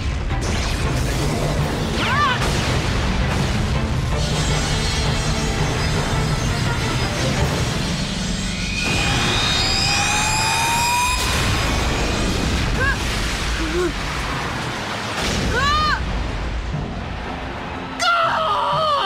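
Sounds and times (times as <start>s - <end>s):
dramatic background music: 0.0s - 19.0s
sustained energy blast: 0.4s - 15.6s
shouts of effort: 18.0s - 19.0s.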